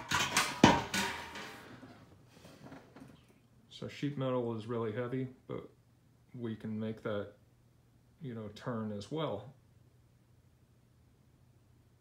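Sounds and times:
handling knocks and rustles: 0:00.0 - 0:03.3.

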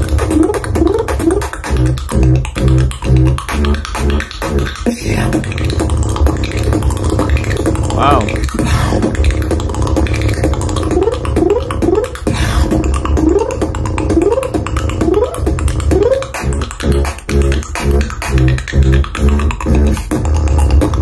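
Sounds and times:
beatboxing: 0:00.0 - 0:21.0.

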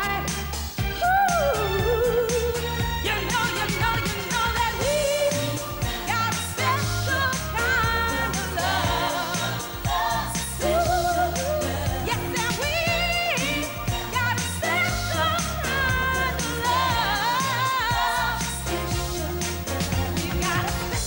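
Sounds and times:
bass and drums backing track: 0:00.0 - 0:21.0
woman singing pop song: 0:00.0 - 0:21.0.

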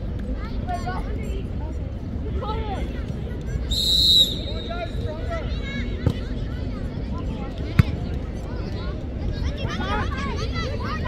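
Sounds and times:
referee's whistle blast: 0:03.7 - 0:04.8.

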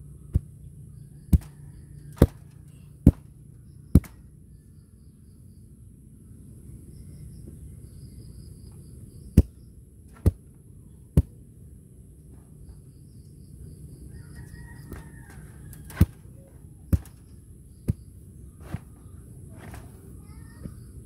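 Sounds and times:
wooden tamper thudding on soil: 0:01.3 - 0:04.3, 0:09.4 - 0:10.5, 0:11.2 - 0:11.4, 0:14.8 - 0:20.0.

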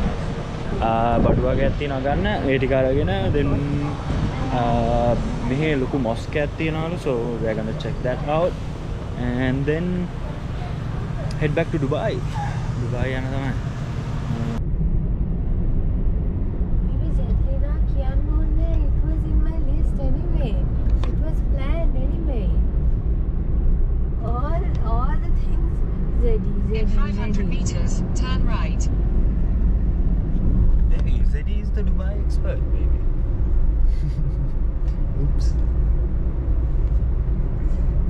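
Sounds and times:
car engine rumble: 0:00.0 - 0:38.0
road noise inside car: 0:00.0 - 0:38.0.

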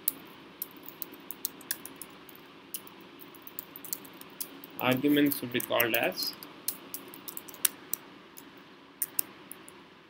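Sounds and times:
faint steady hiss: 0:00.0 - 0:10.0
computer keyboard keystrokes: 0:02.8 - 0:05.0, 0:05.6 - 0:08.0.

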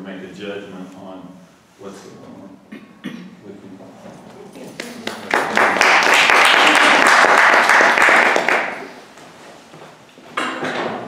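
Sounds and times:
small group applauding: 0:04.7 - 0:09.0.

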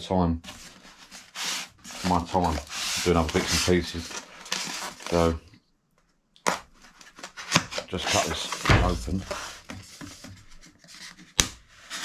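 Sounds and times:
knife scraping packaging block: 0:00.6 - 0:05.2.

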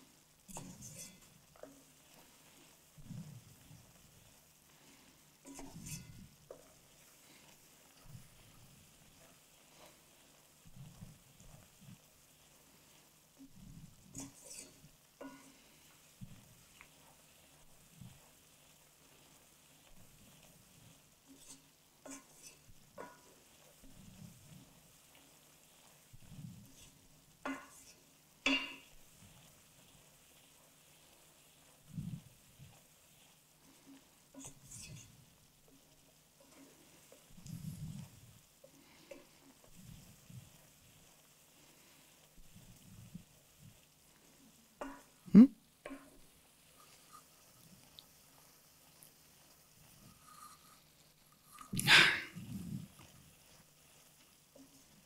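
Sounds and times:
sugar water sizzling in a pan: 0:00.0 - 0:55.0
wooden spoon scraping a pan: 0:00.0 - 0:55.0.

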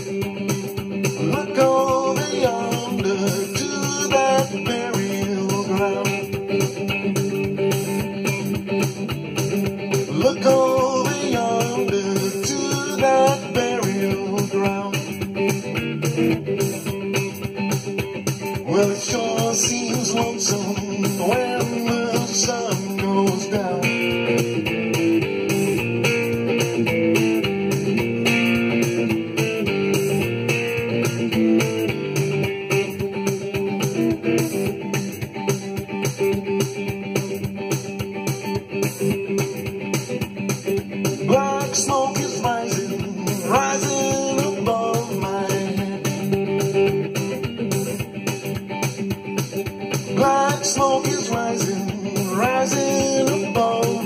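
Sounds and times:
electric guitar blues playing: 0:00.0 - 0:54.0
steady beat: 0:00.0 - 0:54.0.

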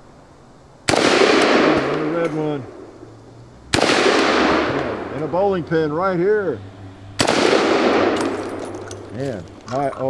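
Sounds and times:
rifle shot echoing: 0:00.9 - 0:03.0, 0:03.7 - 0:05.4, 0:07.2 - 0:09.1.

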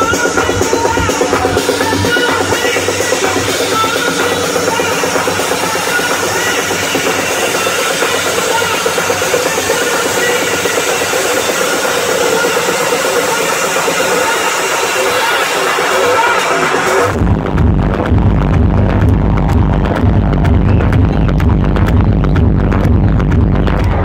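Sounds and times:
loud electronic dance music: 0:00.0 - 0:24.0.

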